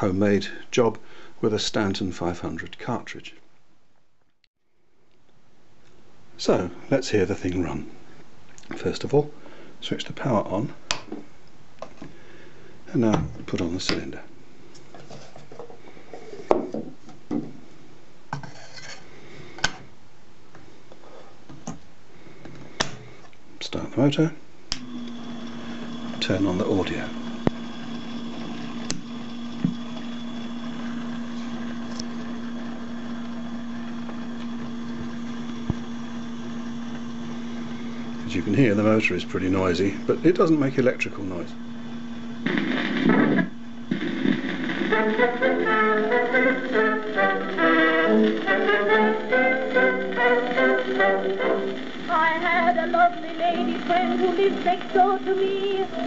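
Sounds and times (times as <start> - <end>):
record scraping on mandrel: 18.4 - 19.1, 42.4 - 45.4
phonograph motor humming: 24.7 - 56.0.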